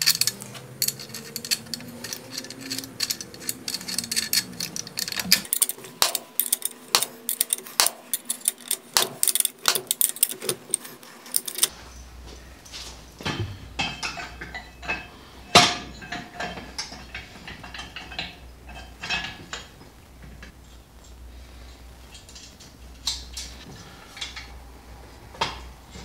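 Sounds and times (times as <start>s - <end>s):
winch ratchet clicking: 0.0s - 11.7s.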